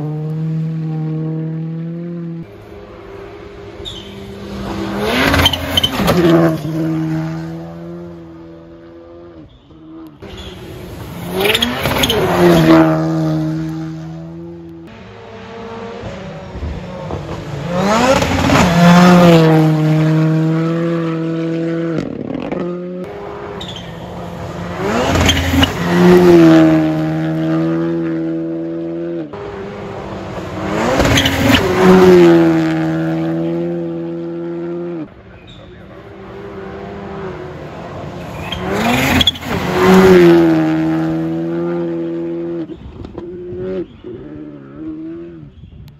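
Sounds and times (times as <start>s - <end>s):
rally cars passing at speed: 0.0s - 45.6s.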